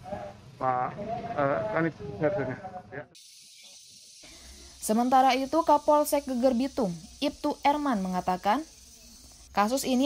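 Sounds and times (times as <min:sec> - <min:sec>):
high-pitched hiss: 0:03.2 - 0:10.0.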